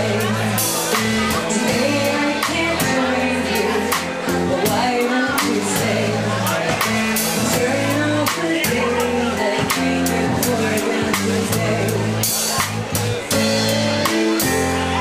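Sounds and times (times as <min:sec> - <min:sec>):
bass notes: 0:00.0 - 0:15.0
drum kit beat: 0:00.0 - 0:15.0
guitar: 0:00.0 - 0:15.0.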